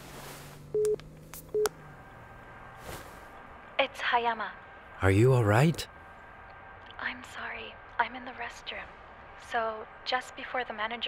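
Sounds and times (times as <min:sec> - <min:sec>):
telephone beeps: 0:00.7 - 0:01.7.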